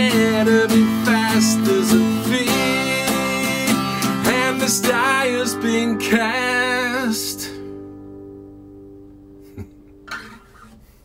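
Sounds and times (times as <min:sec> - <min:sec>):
acoustic guitar chord ringing: 0:00.0 - 0:10.6.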